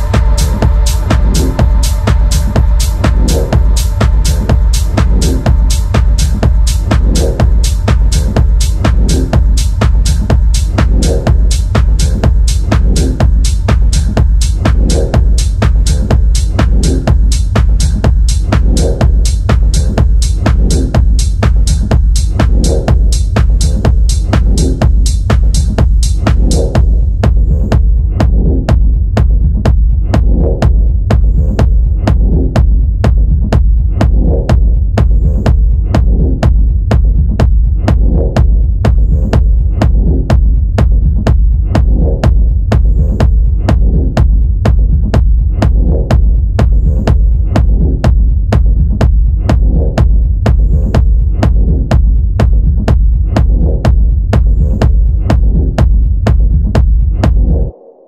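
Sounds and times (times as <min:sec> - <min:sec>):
kick drum: 0:00.0 - 0:57.8
deep sustained bass hum: 0:00.0 - 0:58.0.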